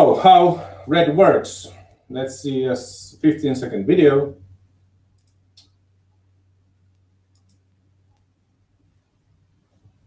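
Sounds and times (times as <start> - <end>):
faint mouse clicks: 5.2 - 5.8, 6.9 - 8.3.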